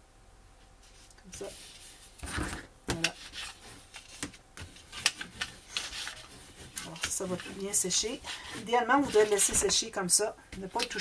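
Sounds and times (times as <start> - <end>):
hands rustling paper: 0.8 - 10.0.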